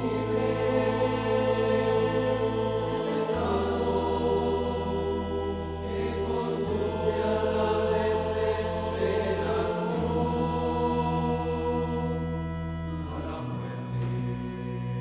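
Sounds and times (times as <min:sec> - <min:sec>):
choir singing a hymn: 0:00.0 - 0:15.0
sustained accompaniment: 0:00.0 - 0:15.0.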